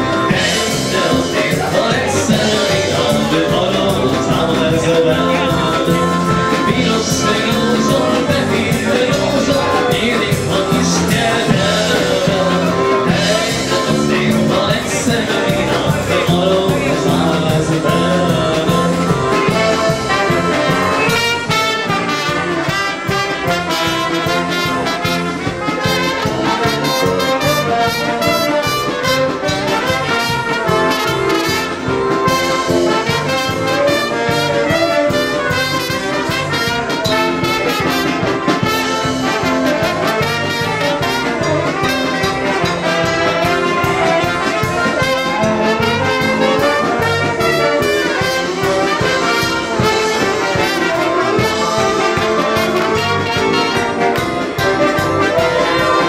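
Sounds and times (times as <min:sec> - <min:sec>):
bass guitar: 0:00.0 - 0:56.0
drum beat: 0:00.0 - 0:56.0
live band with brass: 0:00.0 - 0:56.0
saxophone: 0:00.0 - 0:56.0
trombone: 0:00.0 - 0:56.0
trumpet: 0:00.0 - 0:56.0.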